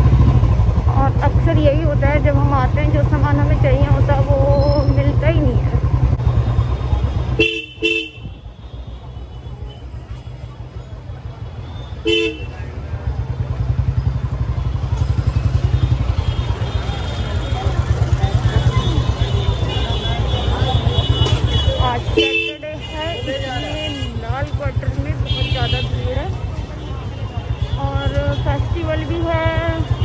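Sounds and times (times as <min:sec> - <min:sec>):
low rumble of traffic: 0:00.0 - 0:30.0
vehicle horn beeps: 0:07.2 - 0:10.1
crowd chatter: 0:08.1 - 0:30.0.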